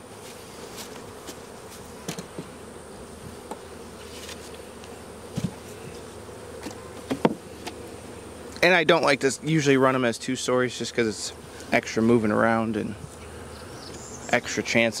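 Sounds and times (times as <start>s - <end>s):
bees buzzing: 0.0s - 15.0s
light knocks on wooden boxes: 4.8s - 5.6s, 6.6s - 7.8s.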